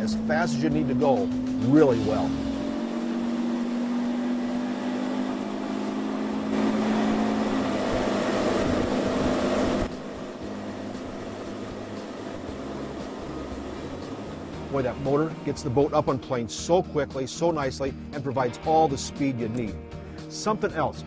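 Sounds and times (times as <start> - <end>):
wind: 0.0 - 16.3
rushing water: 0.0 - 16.8
outboard motor humming: 0.0 - 21.0.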